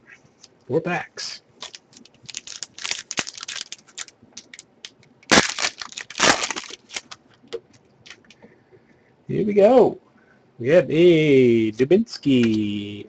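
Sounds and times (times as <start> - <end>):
card pack wrapper crinkling: 1.6 - 7.2
wrapper ripping: 1.6 - 7.2.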